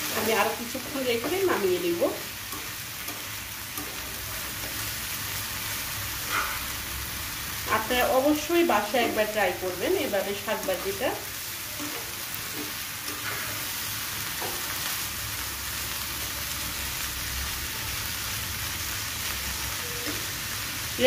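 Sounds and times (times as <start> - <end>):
greens sizzling in a frying pan: 0.0 - 21.0
steel spatula on a pan: 0.0 - 21.0.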